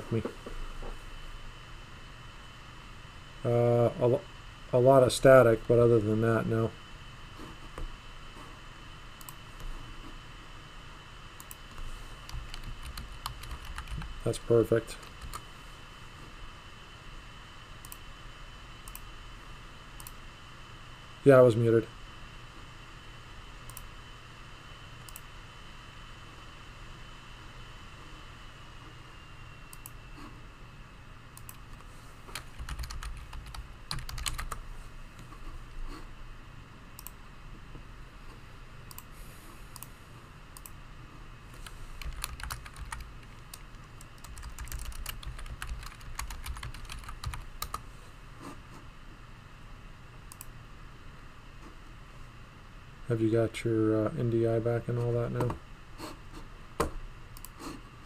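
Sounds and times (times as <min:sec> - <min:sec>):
low steady hum: 0:00.0 - 0:58.0
typing on computer keyboard: 0:12.2 - 0:14.1, 0:15.0 - 0:15.4, 0:31.5 - 0:34.6, 0:42.0 - 0:47.8.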